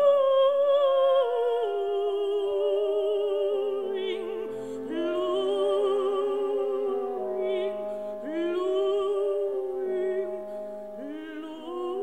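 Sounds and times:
operatic soprano singing: 0.0s - 12.0s.

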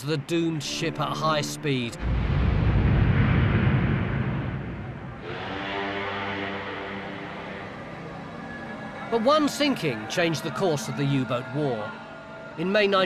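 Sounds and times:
dark background music chords: 0.6s - 12.7s
deep rumbling explosion boom: 1.9s - 5.7s.

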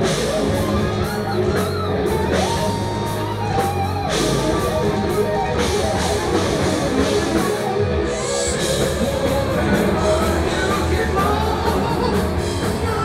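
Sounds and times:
heavy metal band playing: 0.0s - 13.0s.

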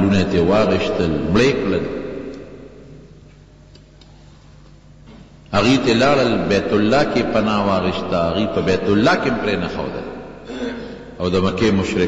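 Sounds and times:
man talking: 0.0s - 2.0s, 5.5s - 12.0s
low electrical hum: 0.0s - 12.0s.

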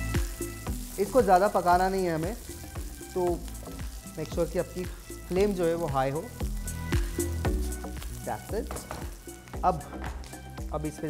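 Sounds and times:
vegetables sizzling in hot oil: 0.0s - 11.0s.

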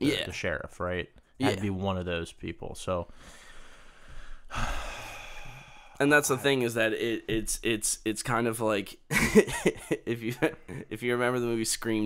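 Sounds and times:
loud breath: 3.1s - 6.0s
person sighing: 4.5s - 6.0s.

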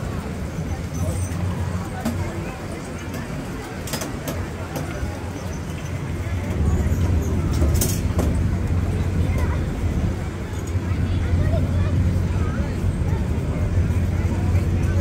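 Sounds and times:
distant voices: 0.0s - 15.0s
steady low rumble: 5.8s - 15.0s.

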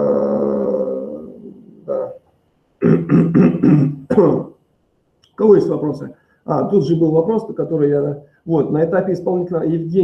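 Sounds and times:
man making wordless sounds: 0.0s - 4.6s.

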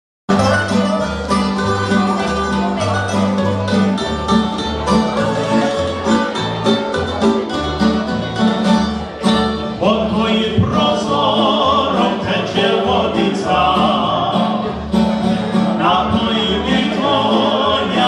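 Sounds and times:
string band playing: 0.3s - 18.0s
upright bass: 0.3s - 18.0s
person singing: 9.8s - 14.7s, 15.8s - 18.0s.

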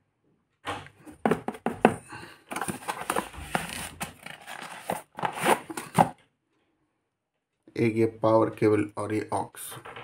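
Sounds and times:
cardboard box rustling and scraping: 1.2s - 6.1s.

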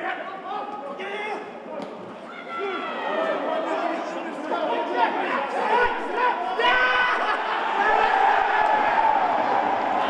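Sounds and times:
crowd talking and calling out: 1.4s - 10.0s.

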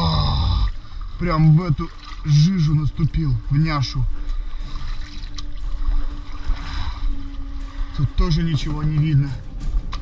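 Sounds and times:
muddy water splashing underfoot: 0.0s - 10.0s.

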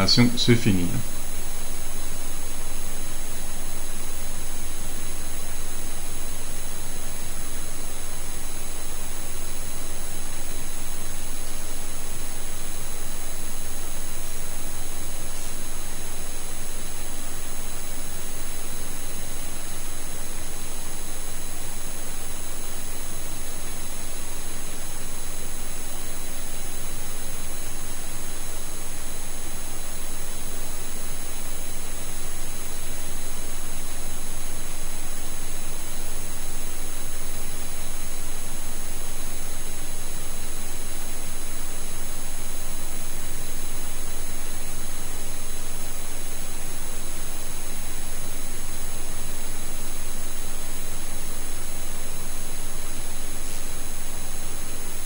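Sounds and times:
faint high-pitched whines: 0.0s - 1.6s
static hiss: 0.0s - 55.0s.

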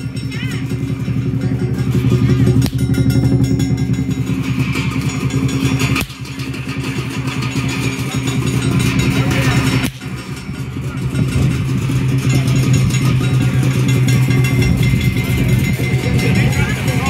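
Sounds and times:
big drum roll: 0.0s - 17.0s
clashing cymbals: 0.0s - 17.0s.

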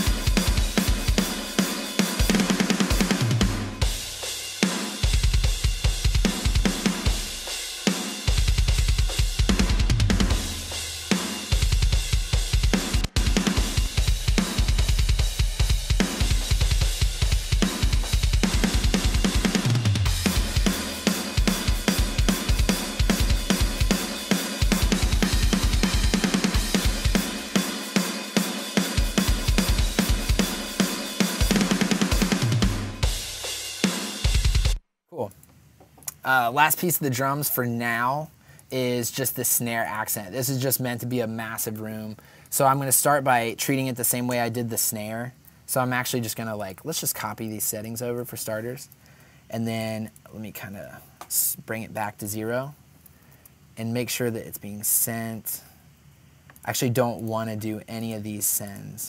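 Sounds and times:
metal drum kit playing: 0.0s - 34.8s.

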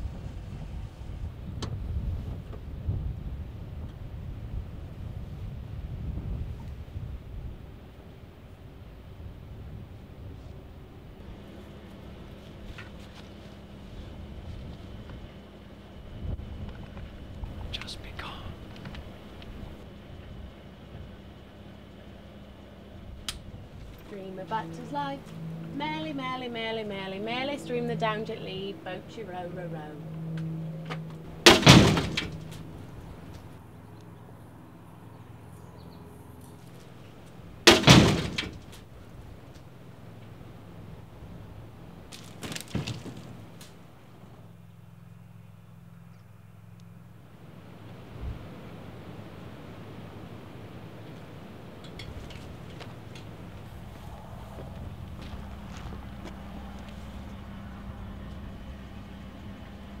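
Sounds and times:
low steady hum: 0.0s - 60.0s
outdoor air noise: 0.0s - 60.0s
vehicle engine idling: 0.0s - 60.0s
loud crash: 31.5s - 32.6s, 37.7s - 38.7s.

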